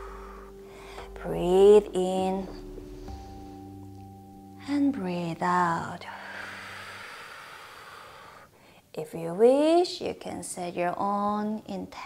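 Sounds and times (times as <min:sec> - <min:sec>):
low background music tone: 0:00.0 - 0:09.4.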